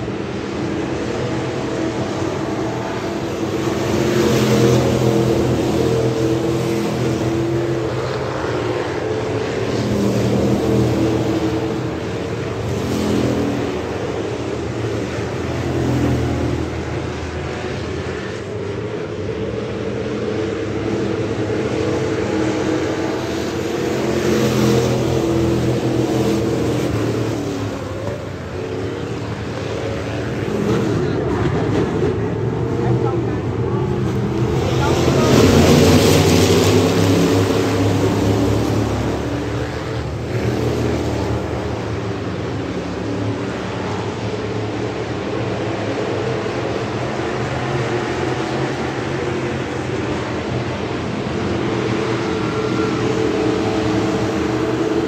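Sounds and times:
stock car engines racing: 0.0s - 55.0s.

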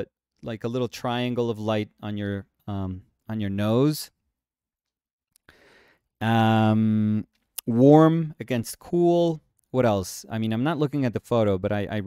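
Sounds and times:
short breath drawn in: 5.5s - 6.1s.

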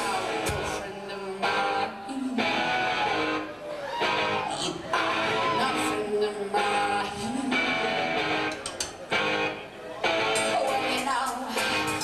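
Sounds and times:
person singing: 0.0s - 8.6s, 10.3s - 12.0s
strummed electric guitar chords: 0.0s - 12.0s.

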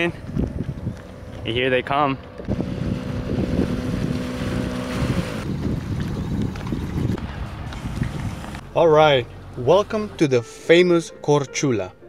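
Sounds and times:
wind buffeting microphone: 0.0s - 8.7s
boat engine running: 0.1s - 10.4s.

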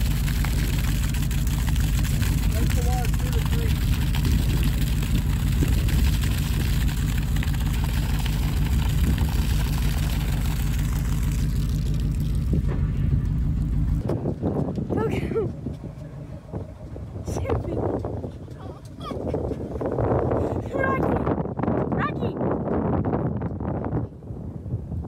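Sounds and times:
hose water splashing onto soil: 0.0s - 14.0s
low engine rumble: 0.0s - 25.0s.

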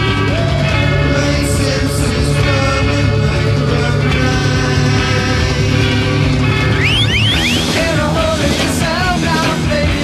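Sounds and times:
psychedelic rock band music: 0.0s - 10.0s.

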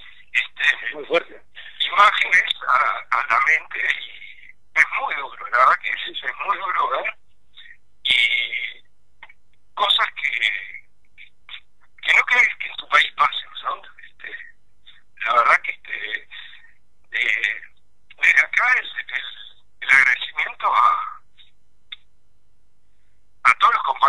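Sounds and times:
voice over telephone line: 0.0s - 8.8s, 9.8s - 10.8s, 12.0s - 14.5s, 15.2s - 21.2s, 23.5s - 24.0s.

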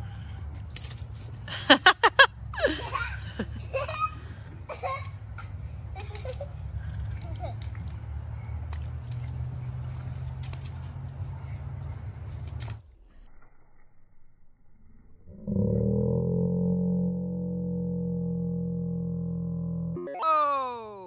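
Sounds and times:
children laughing: 1.5s - 9.9s
steady low rumble: 13.8s - 20.0s.

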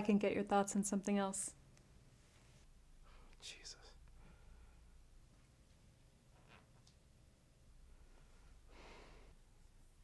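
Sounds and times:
faint whisper: 3.0s - 4.4s.

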